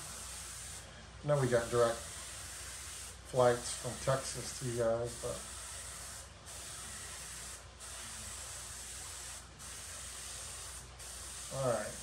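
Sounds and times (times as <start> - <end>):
airbrush spraying hiss: 0.0 - 12.0.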